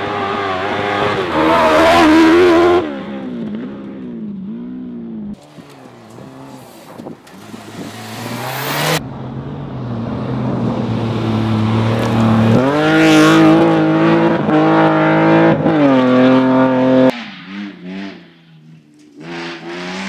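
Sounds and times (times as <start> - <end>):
rally car engines at high revs: 0.0 - 9.0, 10.1 - 20.0
gravel hissing under tyres: 5.4 - 9.0.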